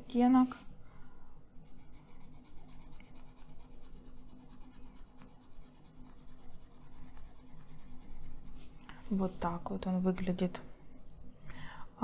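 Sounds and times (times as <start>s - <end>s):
pencil scratching on paper: 1.6s - 8.7s.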